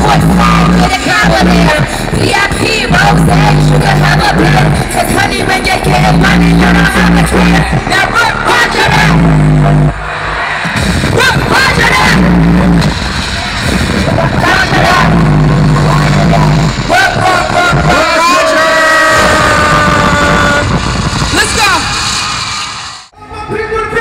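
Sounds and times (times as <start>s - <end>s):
bass-heavy hip-hop beat: 0.0s - 22.8s
crowd yelling: 4.0s - 23.1s.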